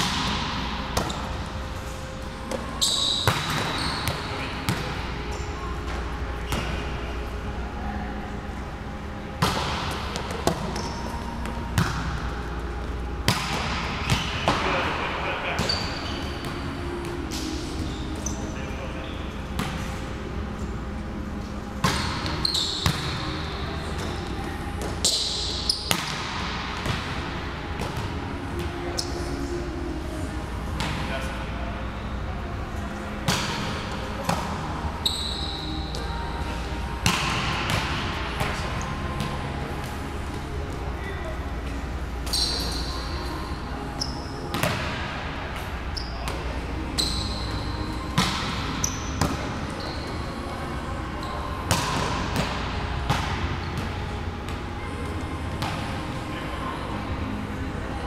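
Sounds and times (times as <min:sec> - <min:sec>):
volleyball slaps in gym: 0:00.0 - 0:01.6, 0:02.5 - 0:07.1, 0:09.4 - 0:18.4, 0:19.5 - 0:20.3, 0:21.4 - 0:31.8, 0:33.2 - 0:40.9, 0:43.9 - 0:50.2, 0:51.4 - 0:56.4
short high squeak: 0:42.3 - 0:43.0.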